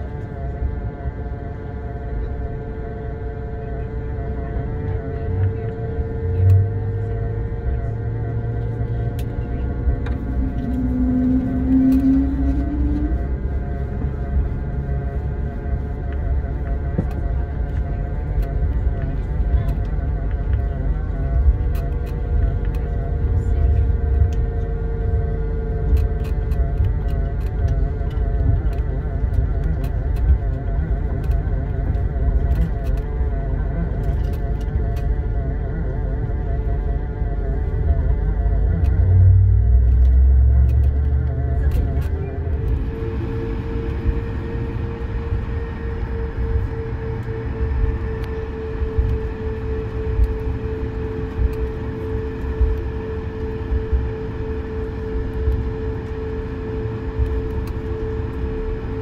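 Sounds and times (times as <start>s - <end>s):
jet engine whine: 0.0s - 59.0s
low rumble of rolling airframe: 0.0s - 59.0s.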